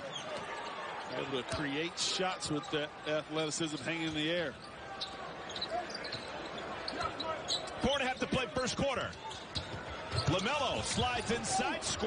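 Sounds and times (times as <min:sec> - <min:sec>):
crowd noise hum: 0:00.0 - 0:12.0.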